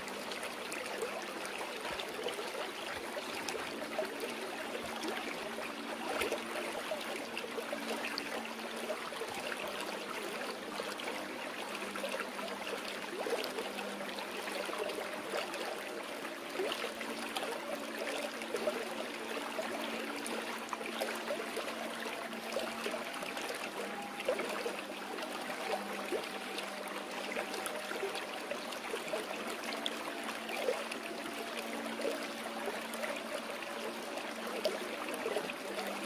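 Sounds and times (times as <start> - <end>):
stream water flowing: 0.0 - 36.0.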